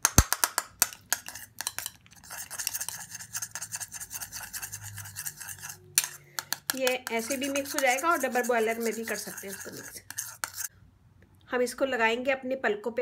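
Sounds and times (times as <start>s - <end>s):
spoon scraping thick mixture in bowl: 0.4s - 10.7s
metal spoon clinking against bowl: 0.8s - 10.7s.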